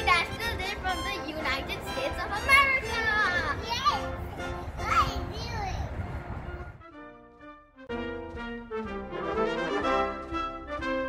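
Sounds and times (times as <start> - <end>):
young children calling out: 2.4 - 4.1, 4.8 - 5.9.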